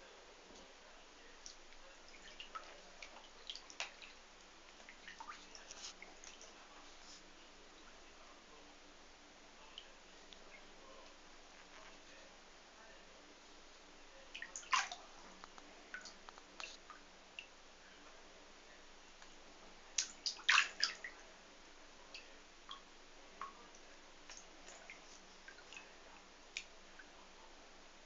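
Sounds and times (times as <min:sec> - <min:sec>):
water dripping in a bathtub: 0:01.3 - 0:08.0, 0:09.6 - 0:12.2, 0:14.2 - 0:17.6, 0:19.2 - 0:21.3, 0:22.0 - 0:27.4.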